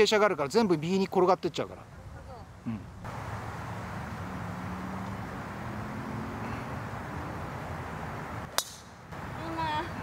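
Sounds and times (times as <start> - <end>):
outdoor background noise: 0.0 - 10.0
golf club hitting ball: 8.5 - 8.9.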